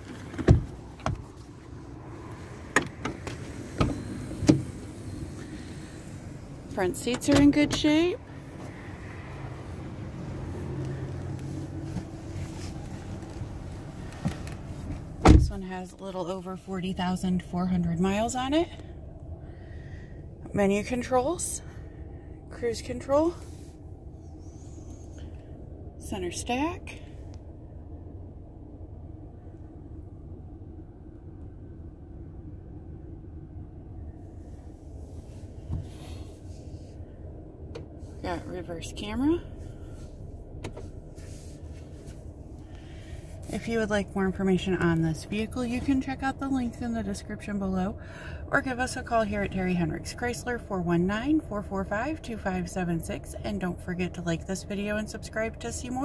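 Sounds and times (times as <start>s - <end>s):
car engine idling: 0.0s - 50.2s.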